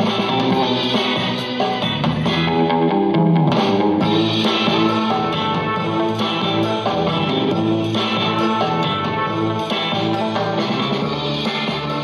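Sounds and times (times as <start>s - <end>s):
loud guitar music from soundbar: 0.0s - 12.0s.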